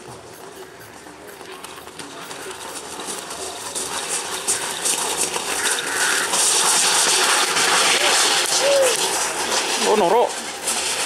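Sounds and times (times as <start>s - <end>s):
bulls galloping: 0.0s - 11.0s
wooden sledge dragging over dirt: 2.0s - 11.0s.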